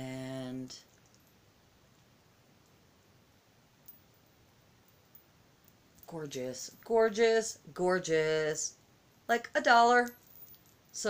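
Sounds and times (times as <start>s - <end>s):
faint clicks of beads and chain: 0.7s - 2.9s, 3.8s - 7.6s, 9.6s - 11.0s.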